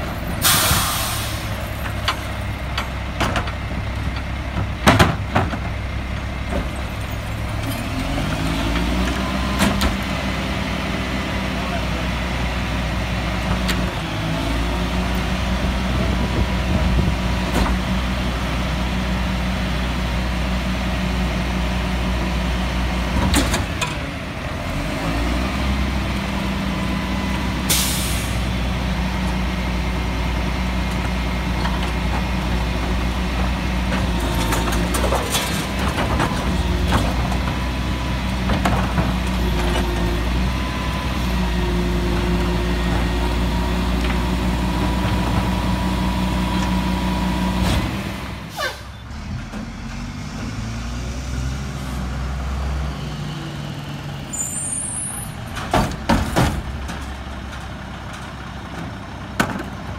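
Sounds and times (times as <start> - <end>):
garbage truck diesel engine: 0.0 - 59.9.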